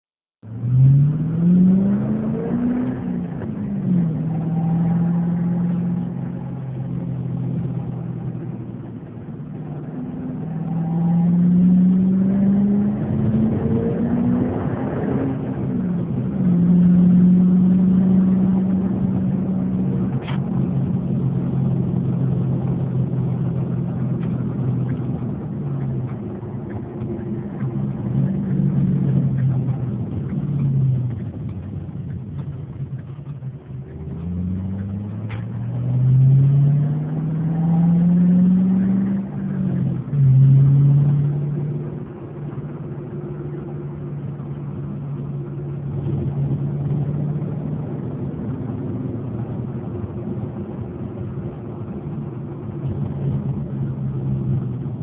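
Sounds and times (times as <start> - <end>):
car engine revving from inside cabin: 0.5 - 8.5, 9.7 - 31.7, 33.1 - 55.0.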